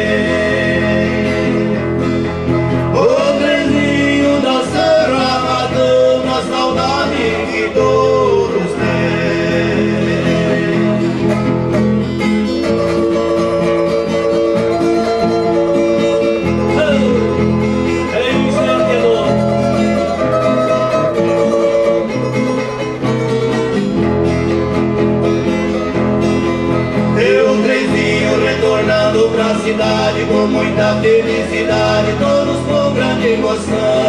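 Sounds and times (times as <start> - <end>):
acoustic guitar music: 0.0 - 34.0.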